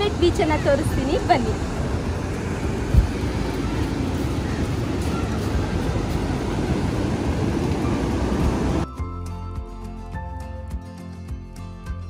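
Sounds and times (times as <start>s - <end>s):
sea surf: 0.0s - 8.8s
wind rumble: 0.0s - 8.9s.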